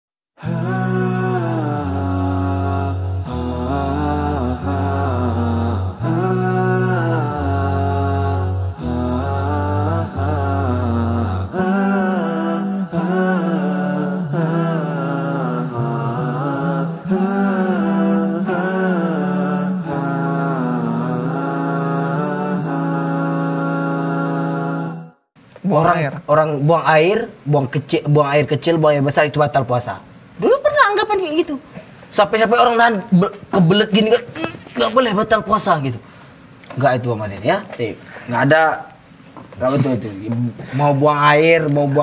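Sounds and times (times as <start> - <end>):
steady low drone: 0.4 - 22.8
layered voices humming held chords: 0.4 - 25.2
chant-like vocal line: 0.4 - 25.3.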